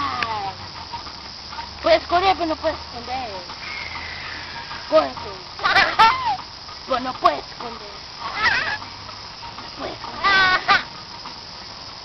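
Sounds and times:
toddler squealing with laughter: 5.6s - 6.4s, 8.3s - 8.8s.

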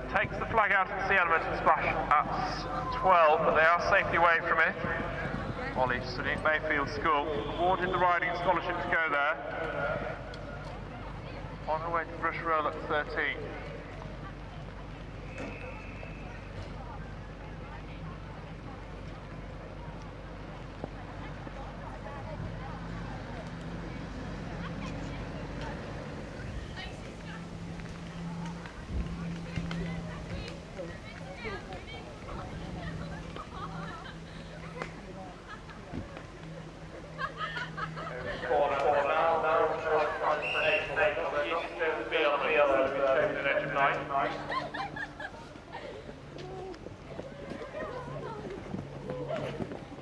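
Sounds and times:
distant voices: 0.0s - 50.0s
low wind rumble: 0.0s - 50.0s
people talking close: 0.0s - 50.0s.

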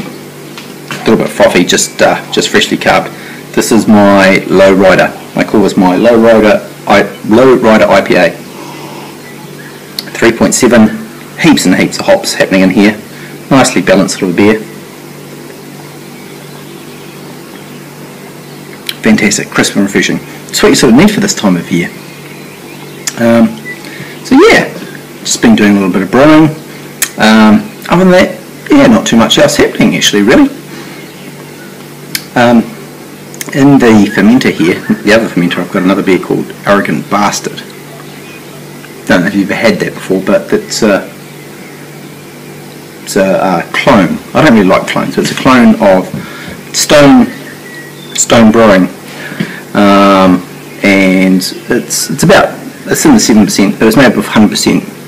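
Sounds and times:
even hiss: 0.0s - 55.0s
low machine hum: 0.0s - 55.0s.

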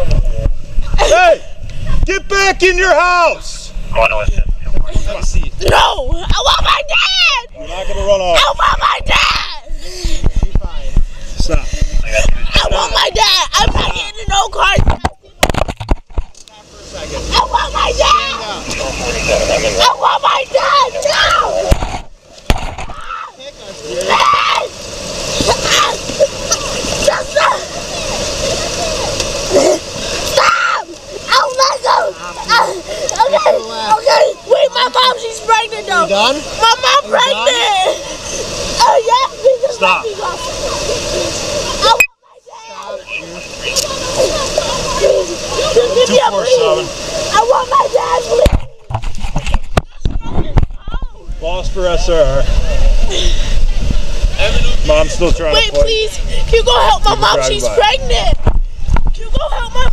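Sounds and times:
camera knocks and thumps: 14.8s - 16.4s, 21.7s - 22.9s
high voice crying out: 17.3s - 18.6s, 25.5s - 27.8s, 29.5s - 33.6s
sharp knock: 21.7s - 22.9s.

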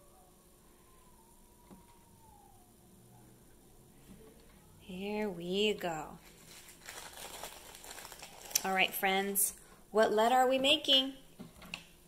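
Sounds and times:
plastic bag crinkling: 5.8s - 9.5s.

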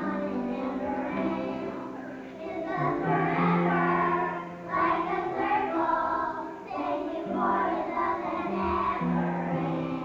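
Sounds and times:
young children singing: 0.0s - 10.0s.

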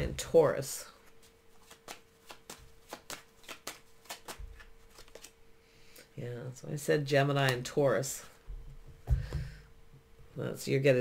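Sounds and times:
faint steady hum: 0.0s - 11.0s
cards being shuffled: 1.0s - 5.4s.

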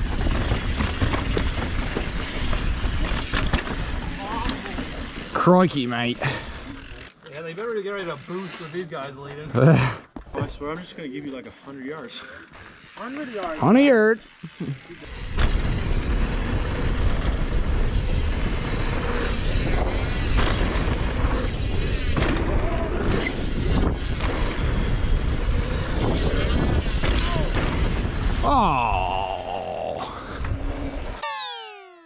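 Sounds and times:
bike tyre rumble on dirt: 0.0s - 7.1s, 14.3s - 31.2s
wind rushing on camera: 15.1s - 31.2s
falling tone: 30.6s - 32.0s
falling sweeps: 30.9s - 32.0s.

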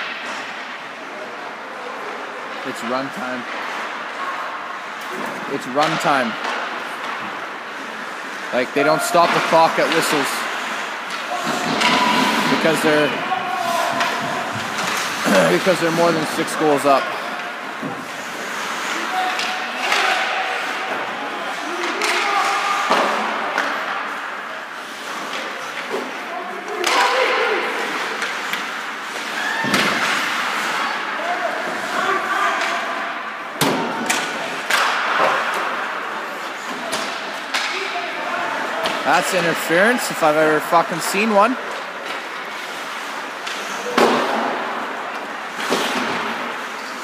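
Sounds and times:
pucks and players hitting boards: 0.0s - 1.4s, 2.0s - 47.0s
skates and sticks on ice: 0.0s - 47.0s.

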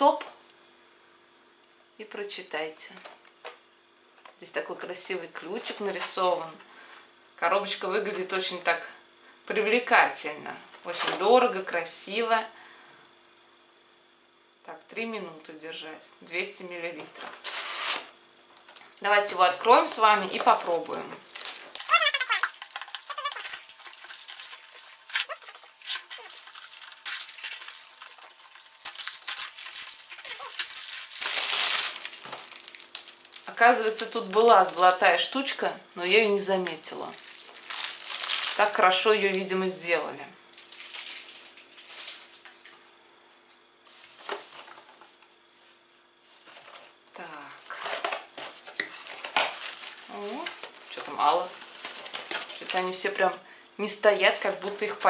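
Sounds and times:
cellophane crinkling: 17.3s - 35.0s, 36.8s - 39.0s, 40.5s - 42.6s, 47.7s - 53.0s.

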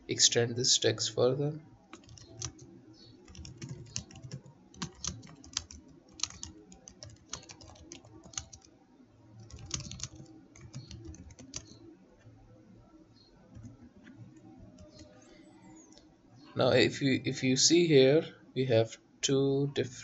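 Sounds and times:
computer keyboard typing: 1.9s - 8.7s, 9.4s - 11.8s, 13.5s - 15.2s.

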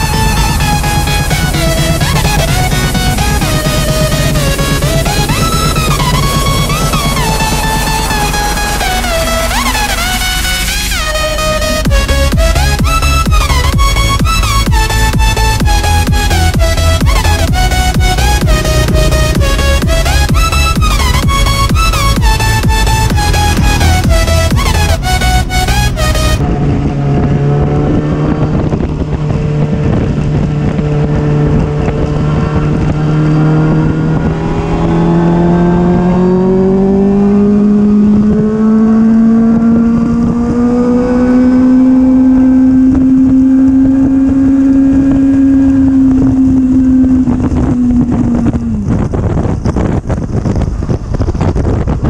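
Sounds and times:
motorcycle engine running: 0.0s - 52.0s
wind buffeting microphone: 11.8s - 52.0s.

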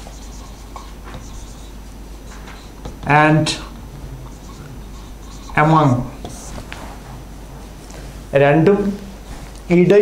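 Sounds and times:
marker pen scratching on whiteboard: 0.0s - 7.1s.

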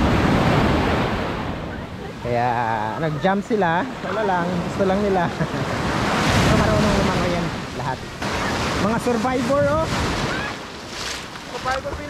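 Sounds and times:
wave breaking on sand: 0.0s - 2.9s, 4.0s - 12.0s.

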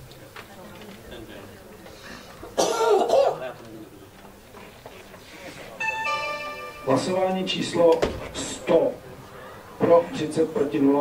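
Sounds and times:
person coughing: 2.6s - 3.4s
electronic chime tone: 5.8s - 7.4s.

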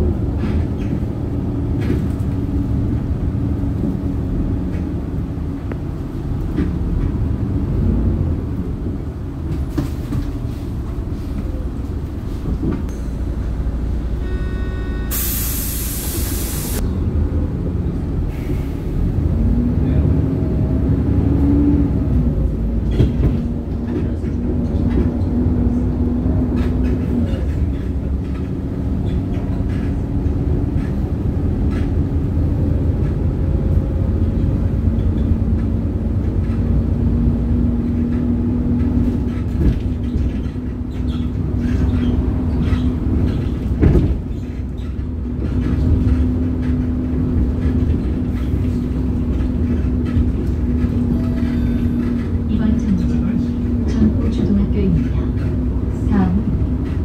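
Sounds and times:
bus engine and road rumble: 0.0s - 57.0s
loud air hiss: 15.1s - 16.8s.

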